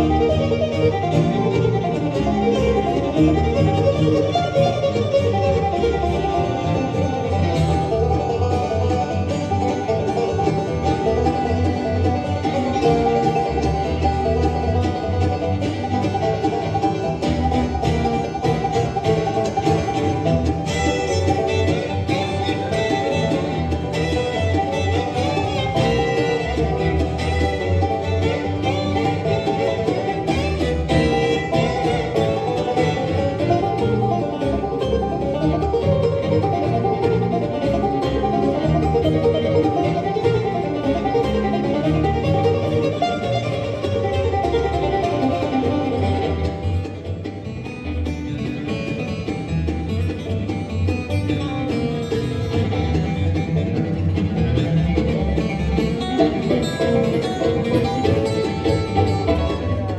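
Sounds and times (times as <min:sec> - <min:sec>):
acoustic guitar: 0:00.0 - 0:59.9
banjo: 0:00.0 - 0:59.9
fiddle: 0:00.0 - 0:59.9
mandolin: 0:00.0 - 0:59.9
upright bass: 0:00.0 - 0:59.9.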